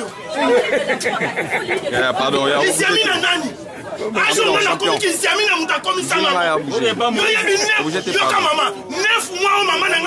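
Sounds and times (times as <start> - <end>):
voices talking quickly: 0.0 - 10.0.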